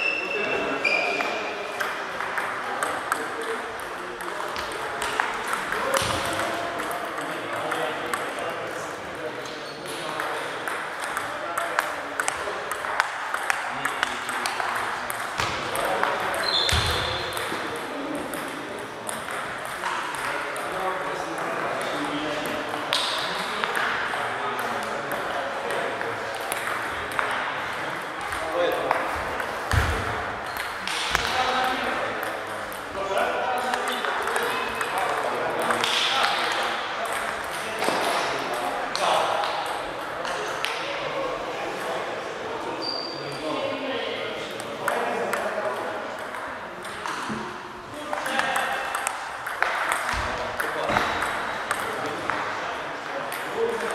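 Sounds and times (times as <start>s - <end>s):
table tennis balls clicking: 1.7s - 8.7s, 9.4s - 33.0s, 33.6s - 40.9s, 44.5s - 53.9s.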